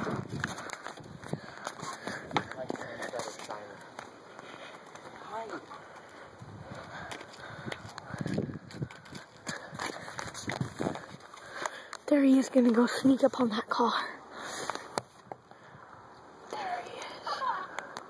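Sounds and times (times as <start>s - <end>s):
footsteps: 0.0s - 13.2s.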